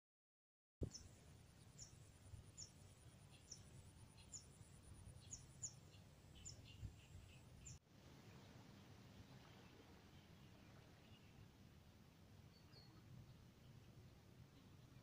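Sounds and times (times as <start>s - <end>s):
small bird chirping: 0.8s - 7.8s.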